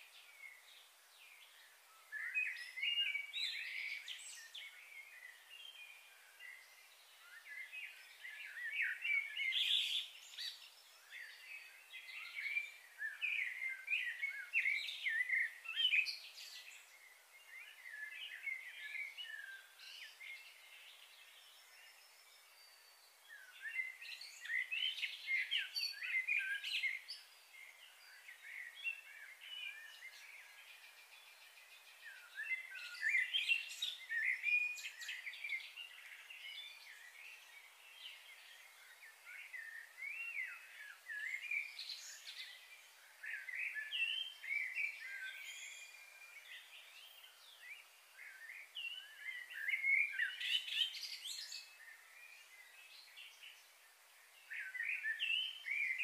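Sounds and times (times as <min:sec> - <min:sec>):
birds chirping: 0:00.0 - 0:56.0.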